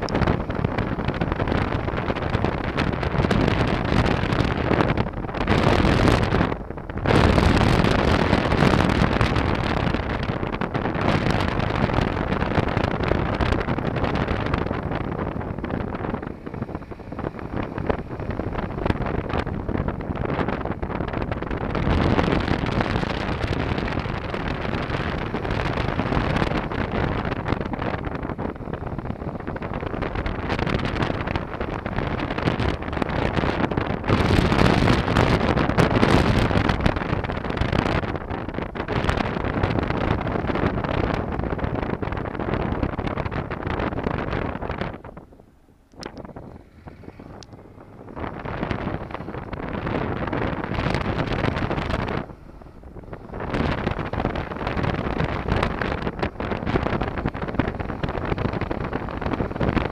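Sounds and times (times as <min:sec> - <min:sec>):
motorcycle engine running: 0:00.0 - 0:45.2, 0:46.0 - 0:59.9
wind rushing over microphone: 0:00.0 - 0:59.9.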